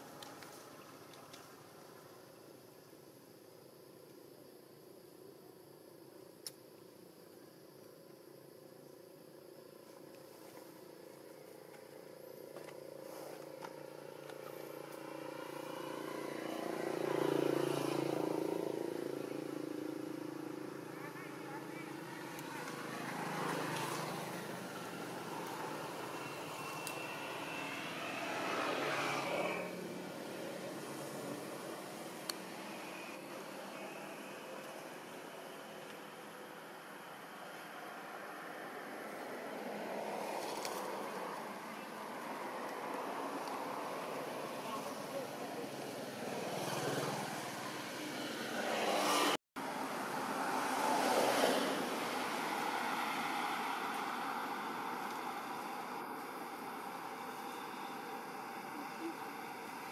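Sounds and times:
road vehicles passing: 0:13.0 - 0:59.9.

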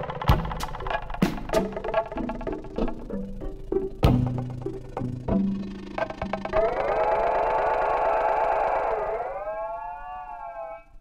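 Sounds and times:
synthesizer siren-like sliding tone: 0:05.4 - 0:11.0.

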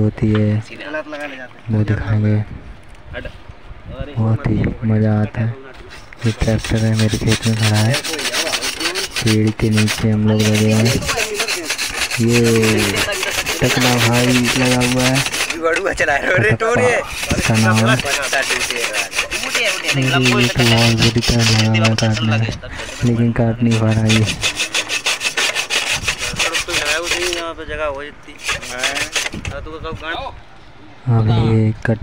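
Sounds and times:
man speaking: 0:04.0 - 0:24.4, 0:31.0 - 0:32.0
hacksaw cutting through bolt: 0:06.0 - 0:15.9, 0:17.0 - 0:27.5, 0:28.4 - 0:29.4.

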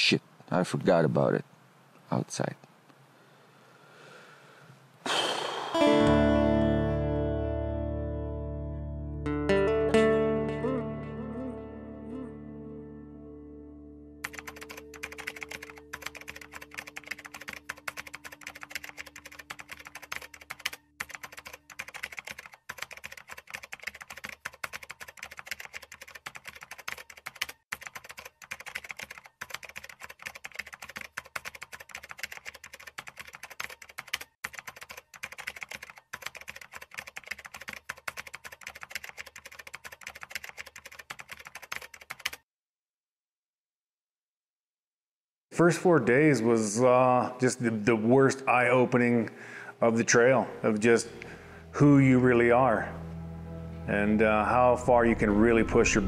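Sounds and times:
held guitar notes: 0:05.1 - 0:14.3, 0:50.7 - 0:56.0
keyboard typing clicks: 0:14.2 - 0:42.4.

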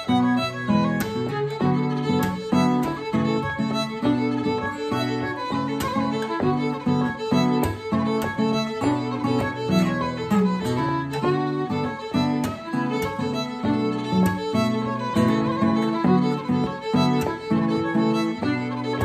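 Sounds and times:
acoustic guitar strumming chords: 0:00.0 - 0:19.0
fiddle playing fast melody: 0:00.0 - 0:19.0.

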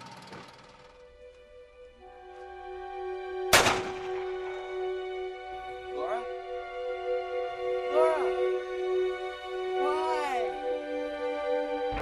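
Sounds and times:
film score sustained notes: 0:00.0 - 0:12.0
loud gunshot: 0:03.5 - 0:04.2.

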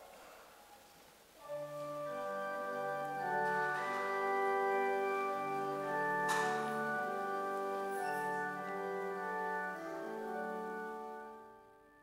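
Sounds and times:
organ playing hymn chords: 0:01.4 - 0:12.0.

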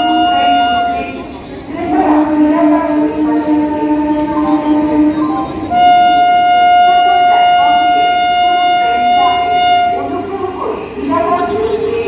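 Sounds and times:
locomotive horn blast: 0:00.0 - 0:10.2.

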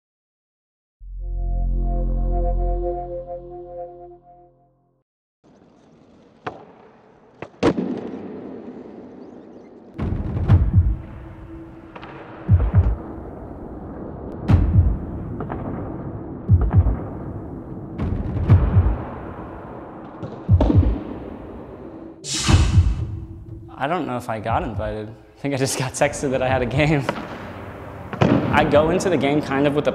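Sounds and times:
skateboard wheels rolling on concrete: 0:05.4 - 0:10.0
skateboard tail pop crack: 0:06.4 - 0:08.4
skateboard landing slap: 0:06.4 - 0:09.0.

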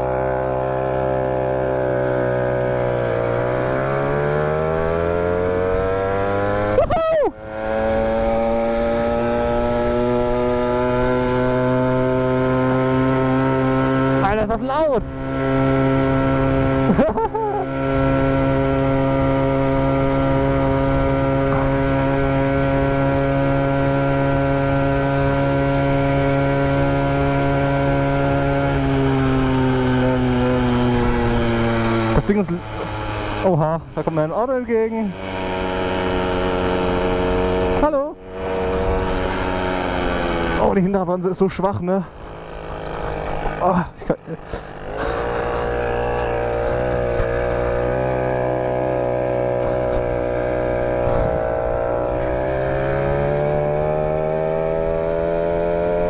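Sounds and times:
two-stroke bike engine revving: 0:00.0 - 0:56.0.

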